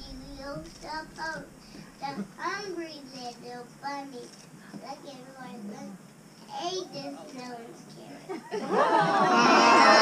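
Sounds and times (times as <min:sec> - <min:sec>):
child singing: 0:00.0 - 0:05.9.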